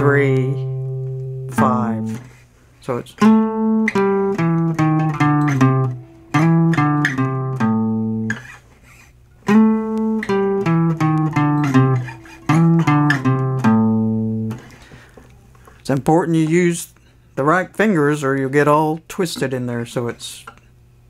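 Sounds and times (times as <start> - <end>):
acoustic guitar blues lick: 0.0 - 2.4, 3.2 - 15.2.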